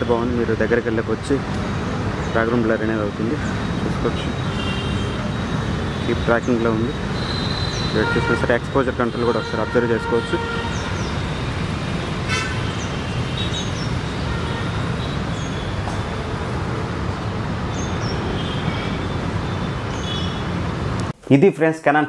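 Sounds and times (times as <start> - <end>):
outdoor traffic noise: 0.0 - 21.2
faint horn toots: 7.2 - 10.9.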